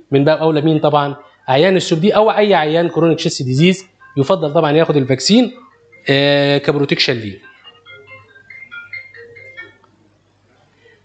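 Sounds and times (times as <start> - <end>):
high-pitched electronic tune: 1.9 - 9.9.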